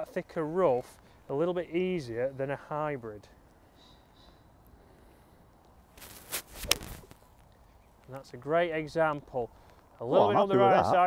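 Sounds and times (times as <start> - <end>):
golf club swish: 6.0 - 7.1
club striking ball and grass: 6.0 - 7.2.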